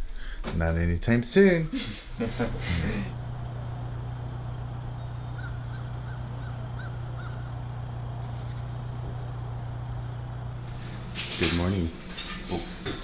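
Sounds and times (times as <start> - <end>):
steady low hum: 2.1 - 13.0
faint bird calls: 4.5 - 9.0.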